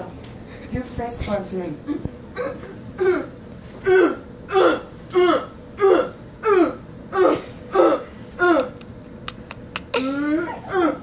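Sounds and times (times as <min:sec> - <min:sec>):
person grunting: 0:02.4 - 0:08.8, 0:09.9 - 0:11.0.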